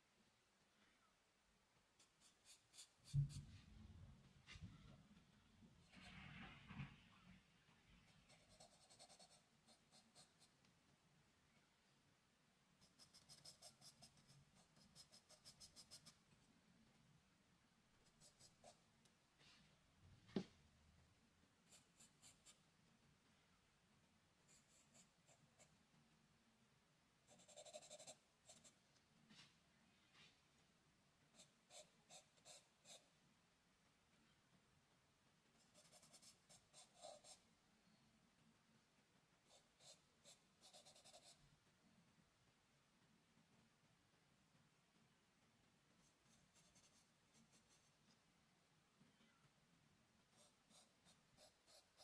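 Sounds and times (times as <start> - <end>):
pencil scratching on paper: 2.0 - 3.5, 8.1 - 10.6, 12.8 - 16.2, 27.3 - 28.8, 31.3 - 33.1, 35.6 - 37.4, 39.4 - 41.4, 46.0 - 48.1, 50.3 - 52.0.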